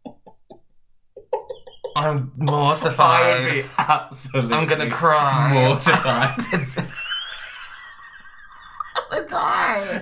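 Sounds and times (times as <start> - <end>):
man laughing: 1.2 - 9.1.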